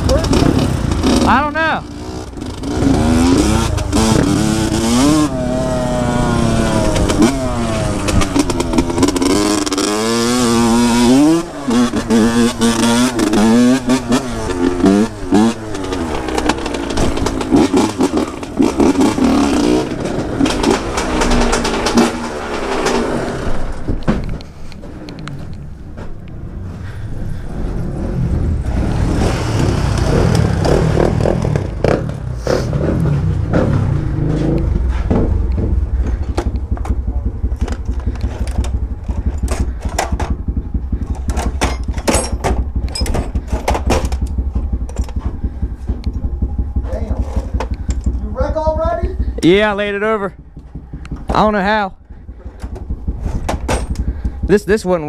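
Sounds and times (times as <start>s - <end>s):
dirt bike engine revving: 0.0s - 24.0s, 26.4s - 55.0s.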